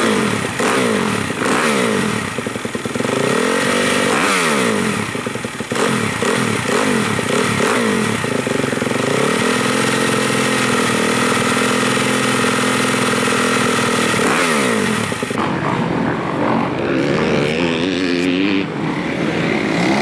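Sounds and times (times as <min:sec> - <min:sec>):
motocross engine revving: 0:00.0 - 0:20.0.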